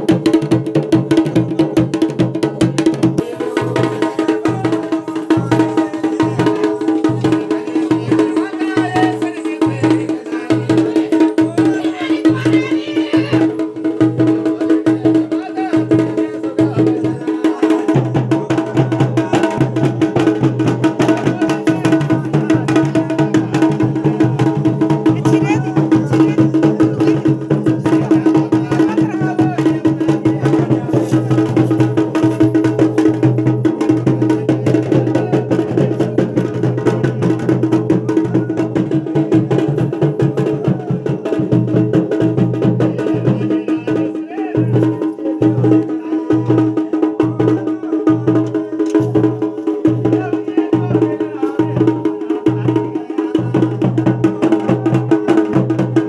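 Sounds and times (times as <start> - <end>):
fast dense drumming: 0.0 - 56.0
voices: 0.0 - 56.0.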